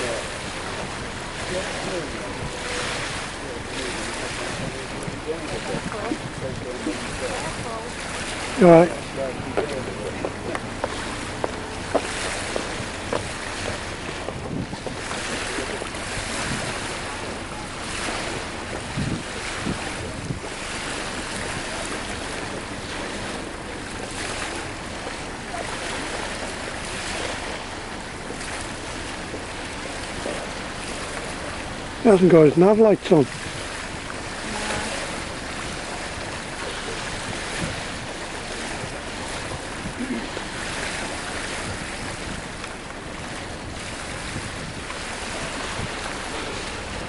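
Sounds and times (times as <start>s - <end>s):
water lapping: 0.0s - 47.0s
wind on microphone: 0.0s - 47.0s.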